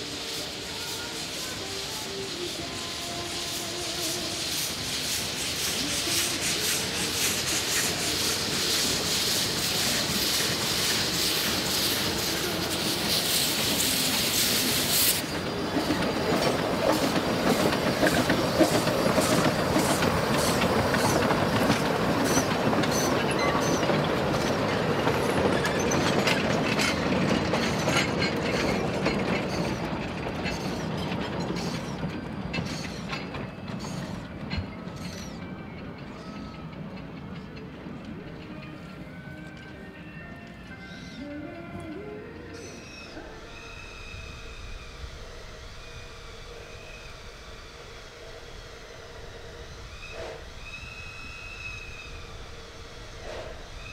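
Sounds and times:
loud hiss of steam: 0:00.0 - 0:38.5, 0:42.5 - 0:53.9
wheels clicking over rail joints: 0:05.7 - 0:39.8.

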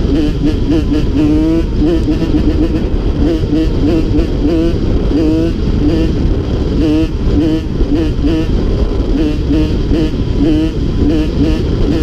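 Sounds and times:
two-stroke engine revving: 0:00.0 - 0:12.0
wind on microphone: 0:00.0 - 0:12.0.

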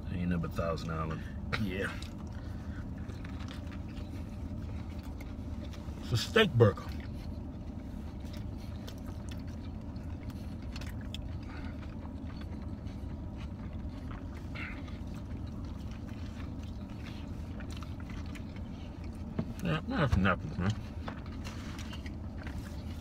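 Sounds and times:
car idling hum: 0:00.0 - 0:23.0
chewing: 0:00.4 - 0:23.0.

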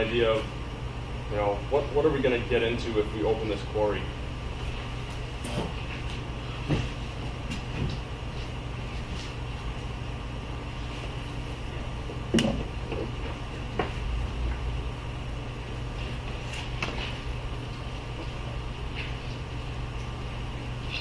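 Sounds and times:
ventilation hum: 0:00.0 - 0:21.0.

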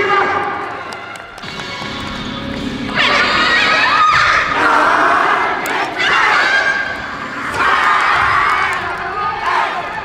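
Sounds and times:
group shouting a chant: 0:03.0 - 0:10.0.

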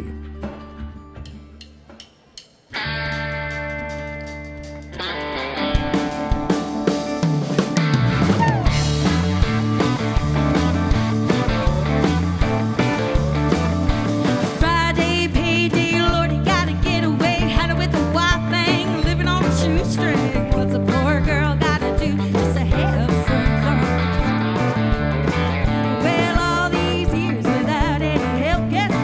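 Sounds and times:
country band playing: 0:00.0 - 0:01.9, 0:02.7 - 0:29.0
female singer: 0:14.5 - 0:24.3, 0:25.8 - 0:29.0.

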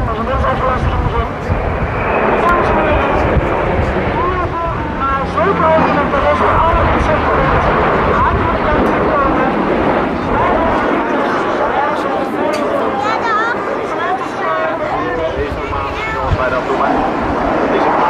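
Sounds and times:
aircraft engine drone: 0:00.0 - 0:18.0
spectators chattering: 0:00.0 - 0:18.0.

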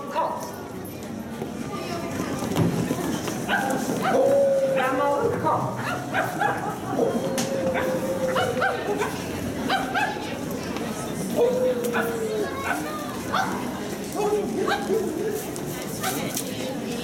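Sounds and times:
people imitating dog yelps: 0:03.6 - 0:10.2.

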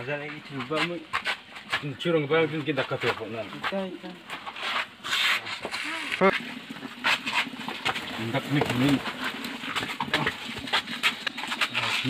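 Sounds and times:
shuffling footsteps: 0:00.0 - 0:06.1.

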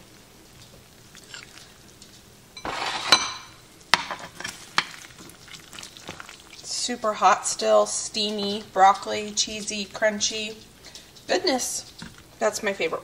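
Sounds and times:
spatula scraping baking dish: 0:02.6 - 0:03.5.

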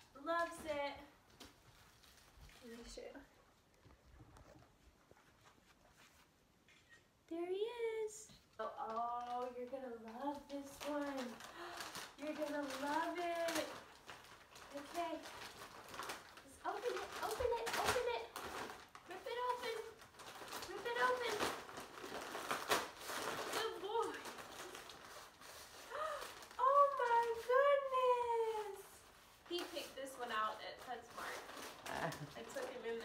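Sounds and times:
wrapping paper crinkling and tearing: 0:01.3 - 0:03.3, 0:08.4 - 0:33.0.

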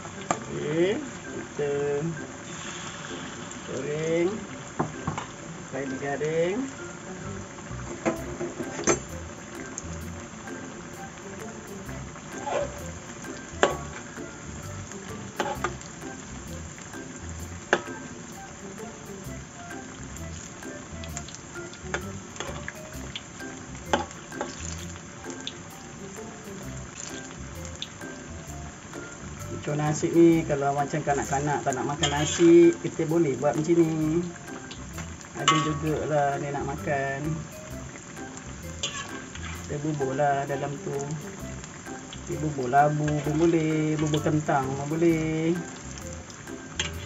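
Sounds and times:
fritters sizzling in hot oil: 0:00.0 - 0:47.0
metal spatula clinking on wok: 0:35.4 - 0:36.0.

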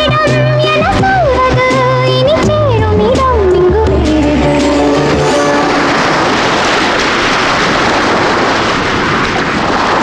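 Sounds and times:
sea waves breaking on a beach: 0:04.8 - 0:10.0.

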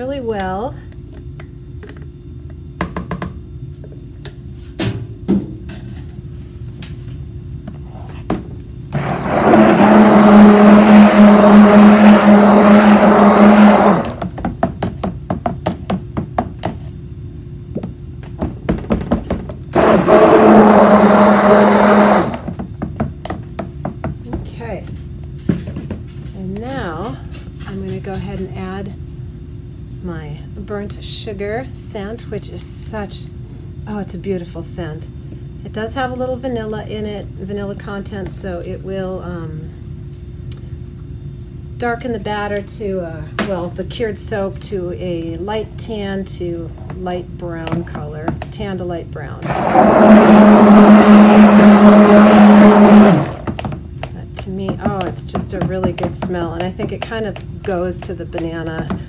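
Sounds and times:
stick blender running: 0:08.9 - 0:14.4, 0:19.7 - 0:22.7, 0:49.4 - 0:53.8.

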